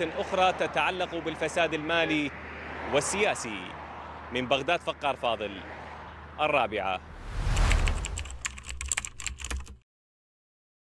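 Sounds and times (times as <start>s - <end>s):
keyboard key clicks: 7.6s - 9.8s.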